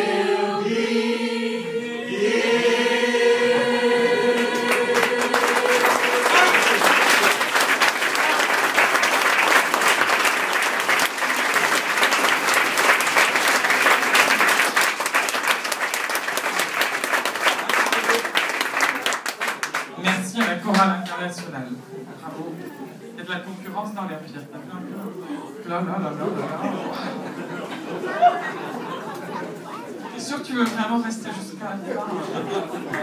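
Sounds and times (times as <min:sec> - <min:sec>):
choir holding a chord: 0:00.0 - 0:07.8
audience applause: 0:04.2 - 0:20.5, 0:32.8 - 0:33.0.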